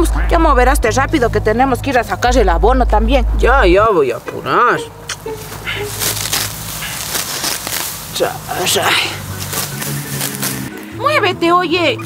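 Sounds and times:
grass rustling as torn by hand: 0:05.1 - 0:10.9
grass stalks snapping: 0:05.1 - 0:10.9.

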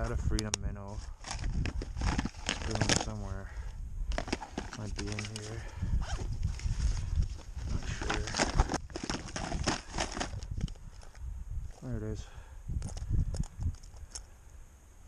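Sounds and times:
nylon bag rustling: 0:01.0 - 0:03.2, 0:04.1 - 0:10.8.

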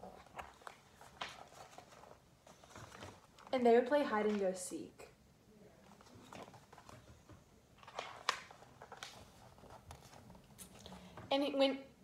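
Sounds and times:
book rustling and tapping: 0:00.0 - 0:04.5, 0:05.9 - 0:11.3.

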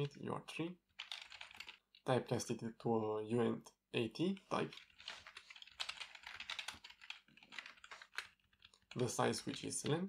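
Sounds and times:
typing on computer keyboard: 0:01.0 - 0:02.1, 0:04.6 - 0:10.0.

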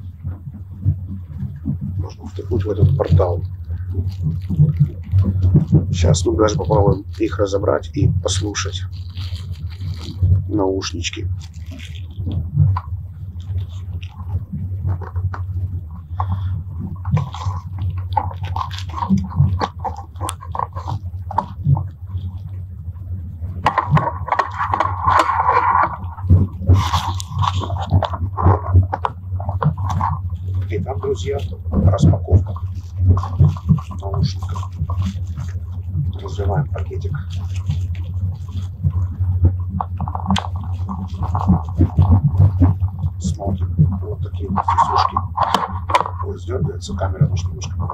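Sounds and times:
plastic packet crackling: 0:01.4 - 0:22.6, 0:23.2 - 0:47.9
indistinct voices: 0:02.0 - 0:04.2, 0:05.9 - 0:09.2, 0:10.5 - 0:12.0, 0:30.6 - 0:32.6, 0:33.9 - 0:35.2, 0:36.2 - 0:37.3, 0:43.1 - 0:47.9.

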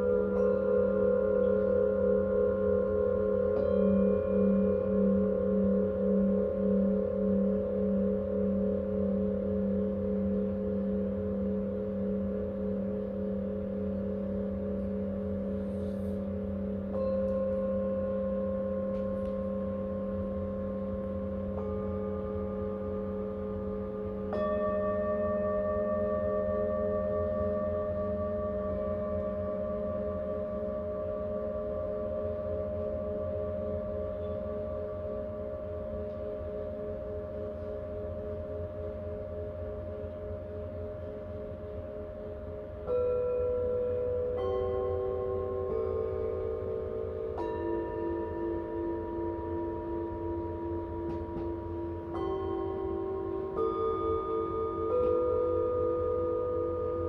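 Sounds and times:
bowl struck with felt mallet: 0:00.0 - 0:57.0
singing bowls ringing: 0:00.0 - 0:57.0.

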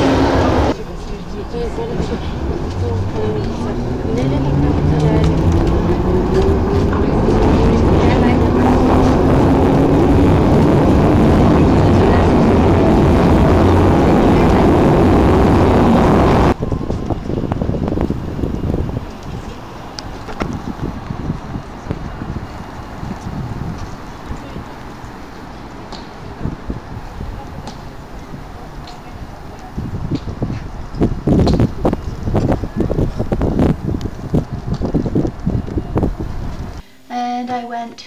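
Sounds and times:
train motors whining: 0:00.0 - 0:36.8
train rumble: 0:00.0 - 0:37.8.

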